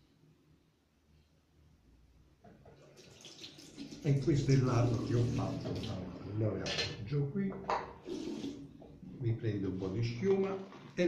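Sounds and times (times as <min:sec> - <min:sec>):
tap water running into sink: 0:02.6 - 0:06.1.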